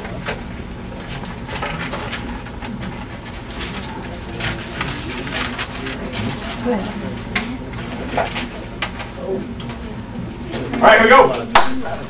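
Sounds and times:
pens scratching: 0.0s - 10.7s
faint murmur of voices: 0.0s - 12.0s
paper rustling: 0.2s - 9.8s.

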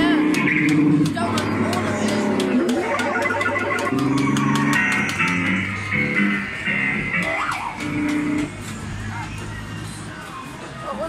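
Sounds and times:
rock music from speaker: 0.0s - 9.5s.

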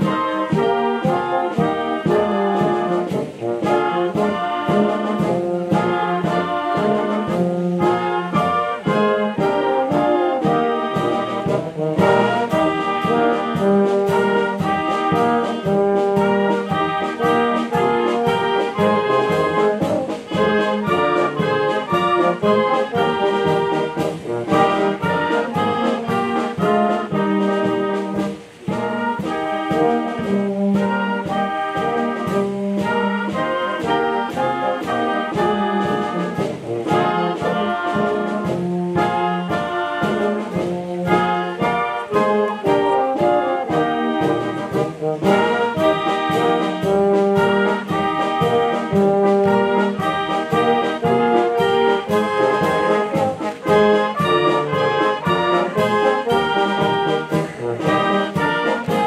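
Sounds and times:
wind band playing a march: 0.0s - 59.0s.

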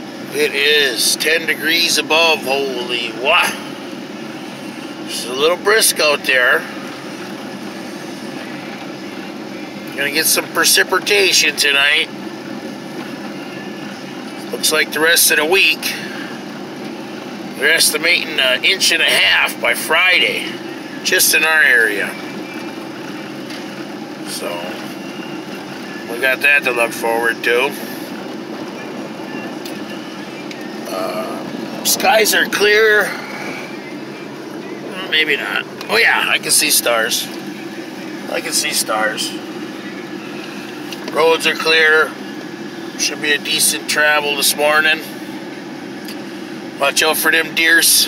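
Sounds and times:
fan running: 0.0s - 48.0s
vehicle engine idling: 0.0s - 48.0s.

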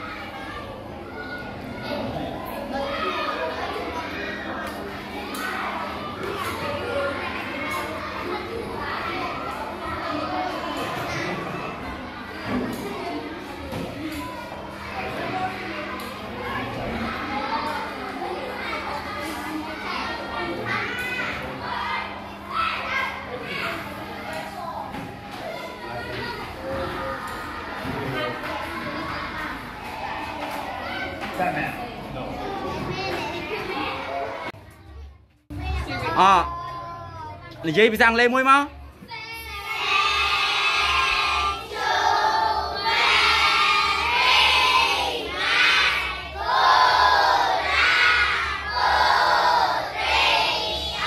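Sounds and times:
children chattering and calling out: 0.0s - 51.0s
children's voices in unison: 39.0s - 51.0s.

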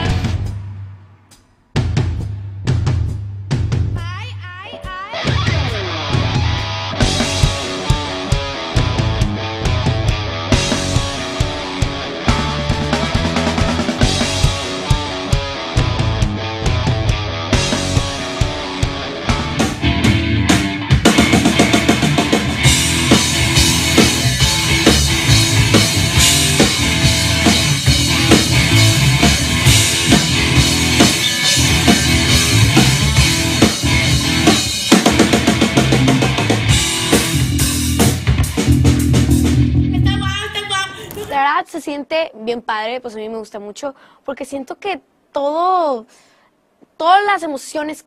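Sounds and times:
drum kit played hard: 0.0s - 40.8s
instrumental rock band: 0.0s - 41.2s.

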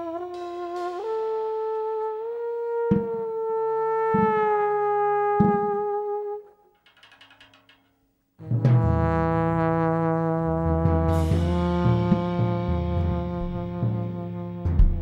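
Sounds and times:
brass band chord: 0.0s - 6.4s, 8.4s - 15.0s.

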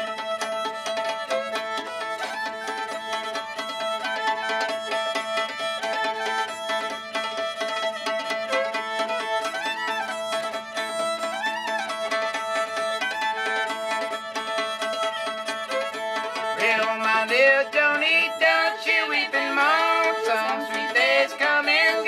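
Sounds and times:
fiddle melody: 0.0s - 22.0s
sticks tapping on fiddle strings: 0.0s - 22.0s.

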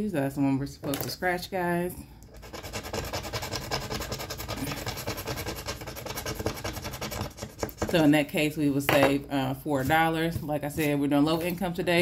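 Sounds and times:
scratch-off sticker scraping: 2.4s - 8.1s.

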